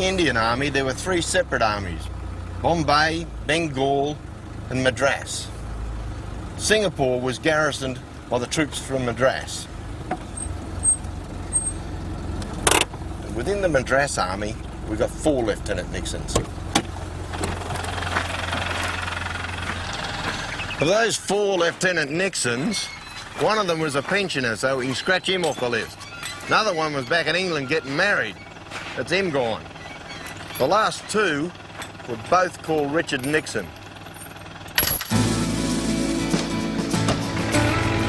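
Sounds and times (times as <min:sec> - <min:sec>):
engine idling: 0:00.0 - 0:38.0
steel chain clanking: 0:22.5 - 0:35.2
background music with low tones: 0:35.2 - 0:38.0.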